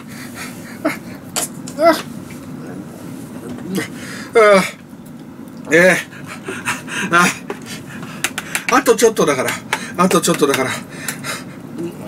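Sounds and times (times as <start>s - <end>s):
man panting hard: 0.0s - 1.2s, 6.0s - 8.7s, 9.6s - 10.0s, 10.6s - 11.7s.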